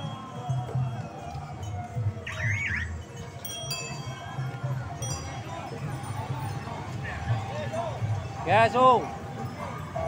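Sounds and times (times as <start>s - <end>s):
bicycle bells ringing: 1.4s - 10.0s.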